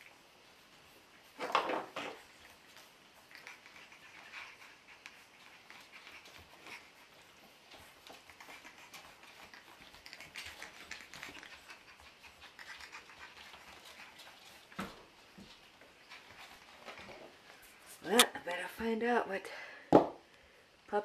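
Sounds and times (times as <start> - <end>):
puppy claws clicking on tile: 7.7 - 17.2.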